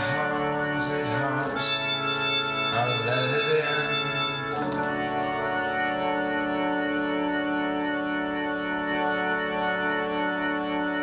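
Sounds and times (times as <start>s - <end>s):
held instrumental chord: 0.0s - 11.0s.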